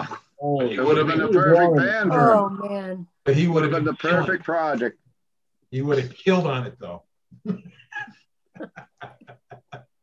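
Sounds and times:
man laughing: 7.4 - 10.0.

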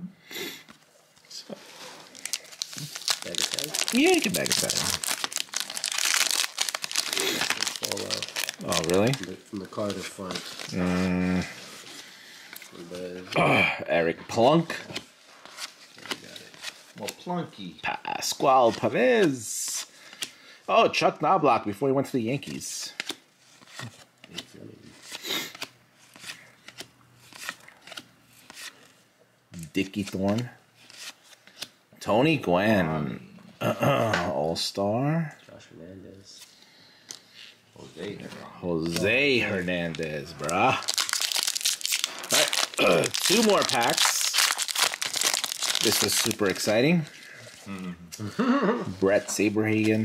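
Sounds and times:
trading cards being flipped: 2.0 - 10.8, 22.5 - 29.0, 30.0 - 31.8, 38.8 - 46.8
foil wrapper crinkling: 2.0 - 11.0, 38.9 - 47.7
man talking: 3.2 - 5.1, 7.2 - 11.6, 37.8 - 41.0, 42.2 - 44.5, 45.8 - 50.0.

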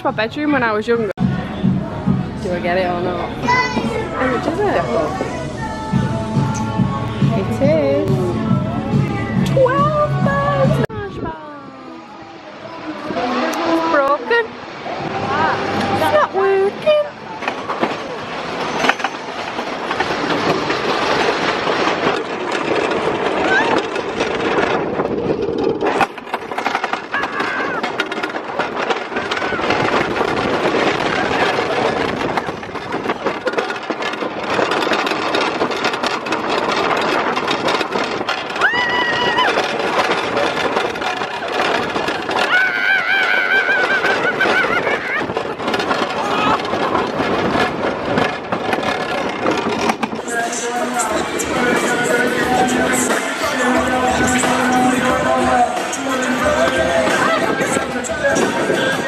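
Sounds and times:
roller coaster clattering on track: 0.0 - 59.0
wind rushing on microphone: 7.3 - 53.2, 56.4 - 59.0
rider screaming: 27.0 - 28.0, 38.5 - 39.8, 42.3 - 45.3.

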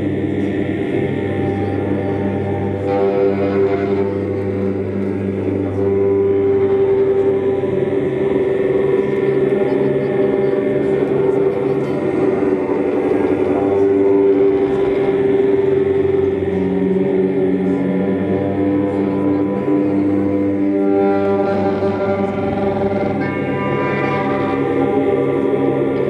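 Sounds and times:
droning instruments: 0.0 - 26.0
man chanting low notes: 0.0 - 26.0.

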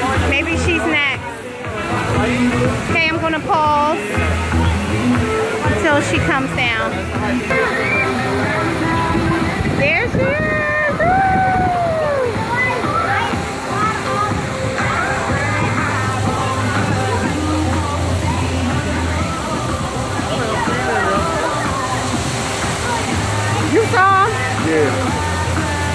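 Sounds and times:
voices shouting and calling: 0.0 - 25.9
water running and splashing: 0.0 - 25.9.

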